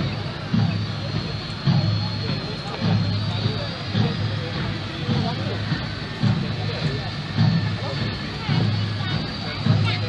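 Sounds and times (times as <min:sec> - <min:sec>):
truck engines droning: 0:00.0 - 0:10.0.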